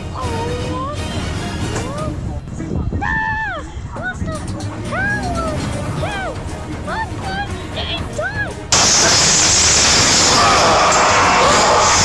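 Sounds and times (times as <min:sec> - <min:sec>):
loud steady rush of noise: 0:08.7 - 0:12.0.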